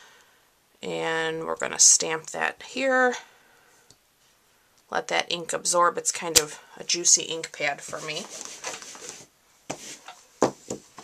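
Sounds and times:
hands rustling craft supplies: 0:07.6 - 0:11.0.

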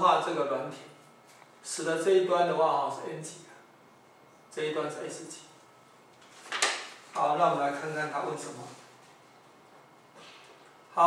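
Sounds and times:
man talking: 0:07.2 - 0:08.8.

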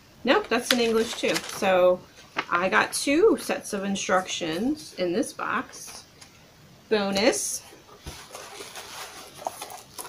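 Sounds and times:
plastic bag rustling: 0:00.5 - 0:02.7, 0:07.6 - 0:10.0
cardboard box rustling: 0:07.8 - 0:10.0.

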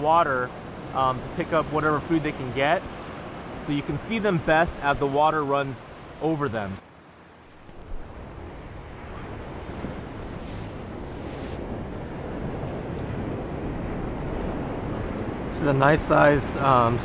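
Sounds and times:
surf washing on beach: 0:00.0 - 0:17.0
wind on microphone: 0:07.7 - 0:17.0.

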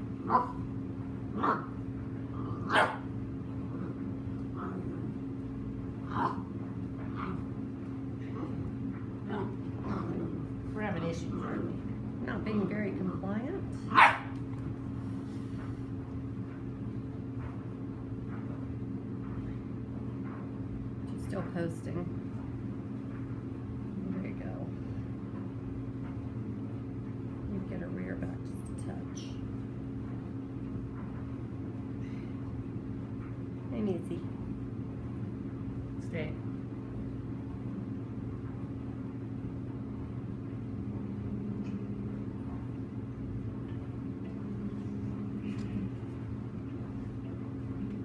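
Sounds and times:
low mechanical hum: 0:00.0 - 0:48.0.

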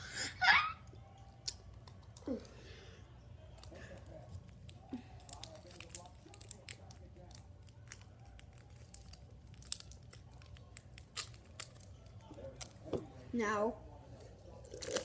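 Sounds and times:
candy bag crinkling: 0:03.6 - 0:12.9, 0:14.2 - 0:15.0.

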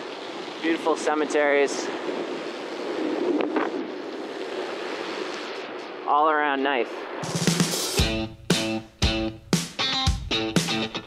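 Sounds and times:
wind buffeting microphone: 0:00.0 - 0:06.1.

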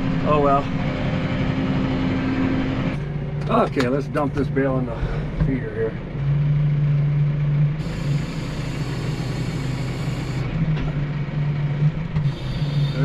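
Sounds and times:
tractor diesel engine running: 0:00.0 - 0:13.0
hydraulic hiss: 0:07.8 - 0:10.4, 0:12.2 - 0:13.0.

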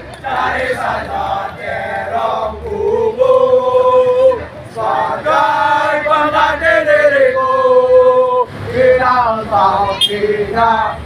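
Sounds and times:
young men singing in unison: 0:00.2 - 0:11.0.

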